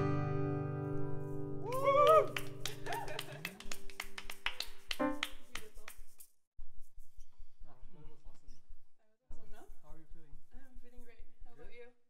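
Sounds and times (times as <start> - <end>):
hand claps keeping a beat: 1.7 - 6.3.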